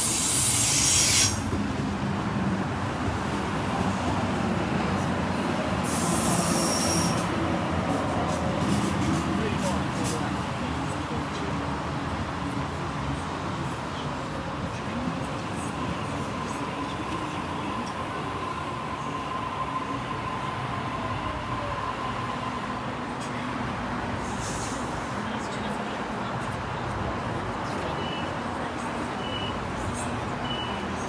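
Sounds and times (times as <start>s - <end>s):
short hiss: 0.0s - 1.5s, 24.3s - 25.2s
short high beeps: 29.2s - 29.6s, 30.4s - 30.8s.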